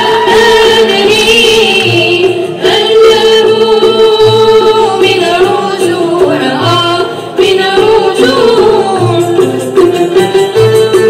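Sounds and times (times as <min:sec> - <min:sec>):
voices singing along: 0:00.0 - 0:09.1
oud and violin ensemble melody: 0:00.0 - 0:11.0.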